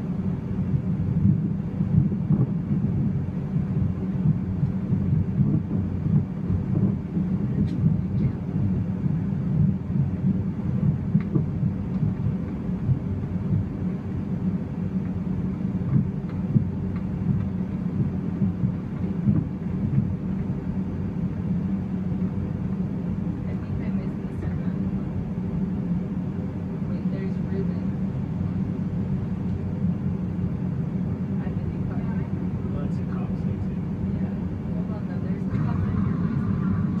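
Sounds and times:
constant hum: 0:00.0 - 0:37.0
low rumble: 0:00.0 - 0:37.0.

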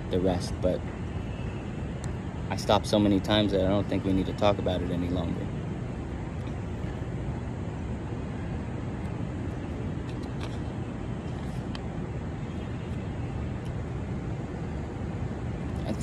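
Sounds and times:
city traffic hum: 0:00.0 - 0:16.0.

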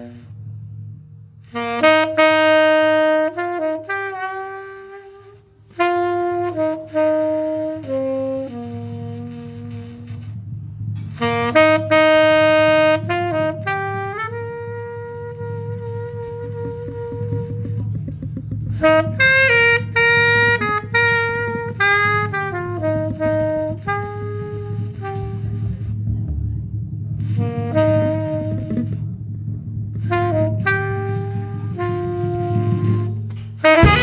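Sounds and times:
tenor saxophone jazz solo: 0:00.0 - 0:26.4, 0:27.1 - 0:34.0
electric bass line: 0:00.0 - 0:34.0.

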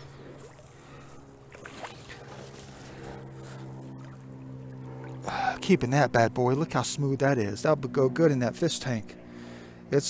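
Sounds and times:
shallow creek water: 0:00.0 - 0:10.0
steady low hum: 0:00.0 - 0:10.0.

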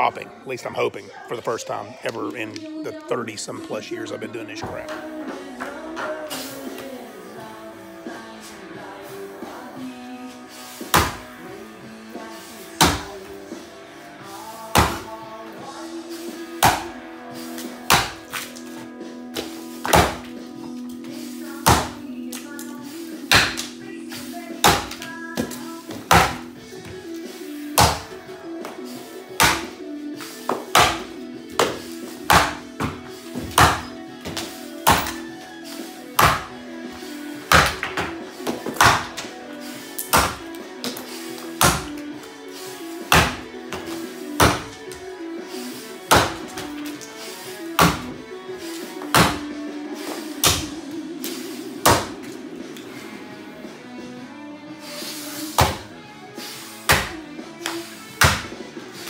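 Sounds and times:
background music: 0:00.0 - 0:59.0
axe chopping wood: 0:10.9 - 0:11.3, 0:12.8 - 0:13.2, 0:14.7 - 0:15.1, 0:16.6 - 0:17.0, 0:17.8 - 0:18.6, 0:19.4 - 0:20.3, 0:21.6 - 0:22.0, 0:23.3 - 0:23.8, 0:24.6 - 0:26.5, 0:27.8 - 0:28.2, 0:29.4 - 0:29.8, 0:30.5 - 0:35.2, 0:36.2 - 0:36.6, 0:37.4 - 0:39.3, 0:40.0 - 0:42.1, 0:43.1 - 0:45.0, 0:46.1 - 0:47.1, 0:47.8 - 0:48.2, 0:49.0 - 0:49.6, 0:50.4 - 0:50.8, 0:51.8 - 0:52.2, 0:55.6 - 0:55.9, 0:56.8 - 0:57.2, 0:58.2 - 0:58.6.

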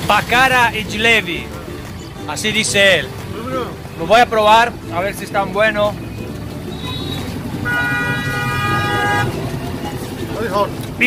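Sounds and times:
street traffic rumble: 0:00.0 - 0:11.0
vehicle horn honk: 0:06.7 - 0:09.4.

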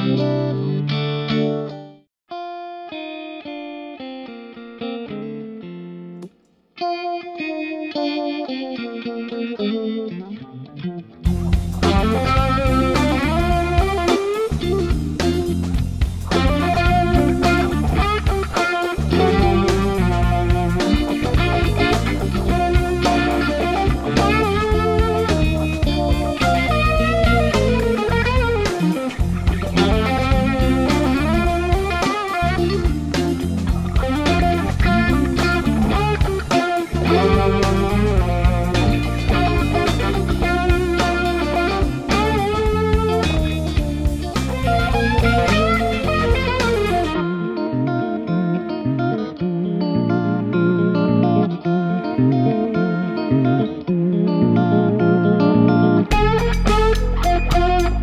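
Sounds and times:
electric guitar with vibe effect: 0:00.0 - 0:58.0.

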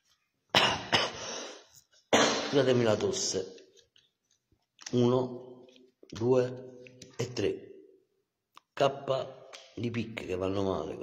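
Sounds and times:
man coughing: 0:00.5 - 0:02.8.

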